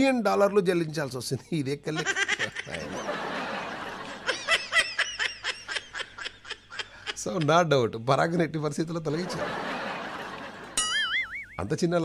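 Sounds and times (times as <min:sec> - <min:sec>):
person laughing: 0:02.0 - 0:03.0.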